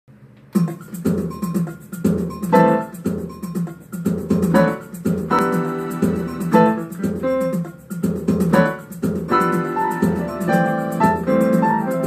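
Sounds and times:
digital piano playing: 0:00.6 - 0:12.0.

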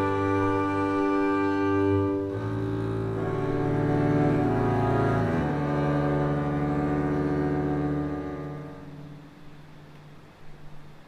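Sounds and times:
double basses bowing low chord: 0:00.0 - 0:10.8.

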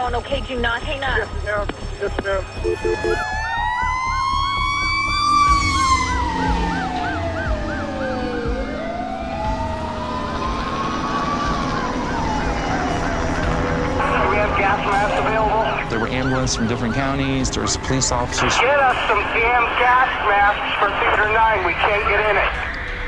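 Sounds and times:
siren wailing: 0:00.0 - 0:23.0
siren yelping: 0:00.5 - 0:22.8.

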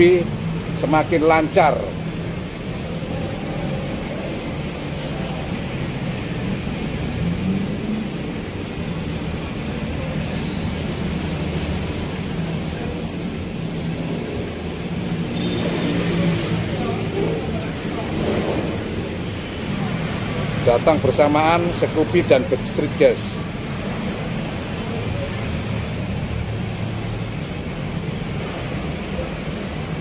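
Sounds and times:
rumble of vehicles: 0:00.0 - 0:30.0
faint high whistling tones: 0:04.2 - 0:24.0.

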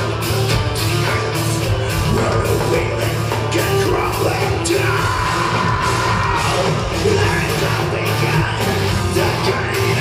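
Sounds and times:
metal band playing live: 0:00.0 - 0:10.0
shouted vocal: 0:03.7 - 0:10.0.

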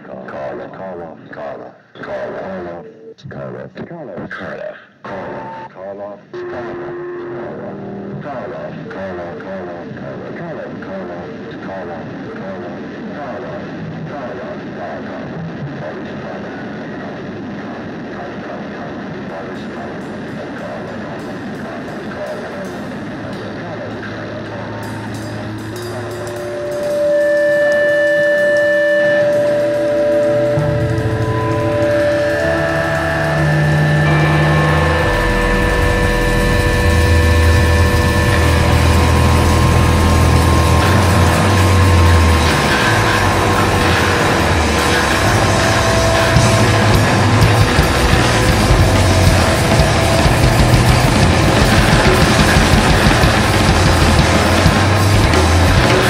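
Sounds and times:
band with distorted guitars: 0:05.0 - 0:09.1, 0:14.6 - 0:56.0
ringing guitar notes: 0:06.3 - 0:08.2, 0:19.9 - 0:56.0
low bass line: 0:22.3 - 0:56.0.

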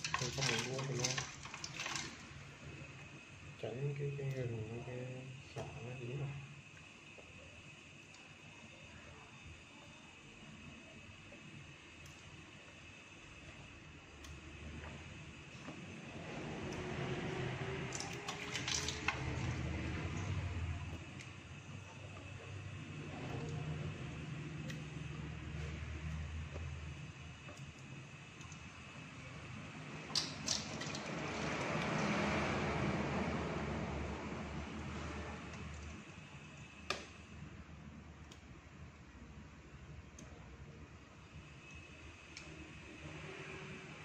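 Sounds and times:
water sloshing in steel pot: 0:00.0 - 0:02.5, 0:16.6 - 0:22.6, 0:30.0 - 0:32.5.

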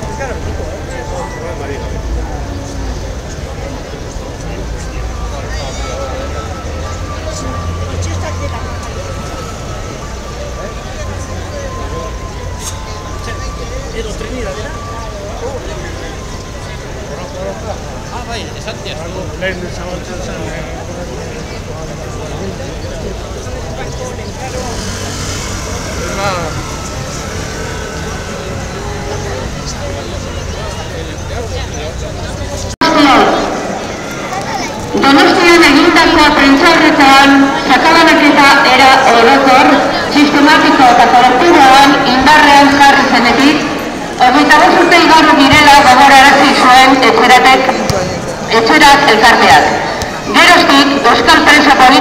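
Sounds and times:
city traffic rumble: 0:00.0 - 0:52.0
crowd babble: 0:00.0 - 0:52.0
faint steady high tone: 0:04.4 - 0:18.6
voice rising above crowd: 0:24.4 - 0:31.1.

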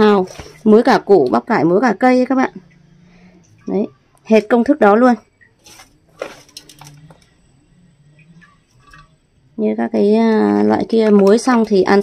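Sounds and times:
bamboo shoots rustling: 0:05.6 - 0:07.3.

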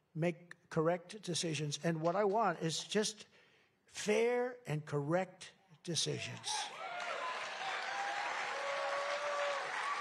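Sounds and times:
audience calls: 0:06.4 - 0:10.0
crowd applauding: 0:06.7 - 0:10.0.

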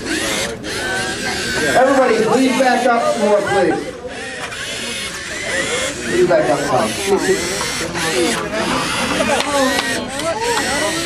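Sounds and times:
murmur of crowd voices: 0:00.0 - 0:11.0
robot motors whirring: 0:00.0 - 0:11.0.

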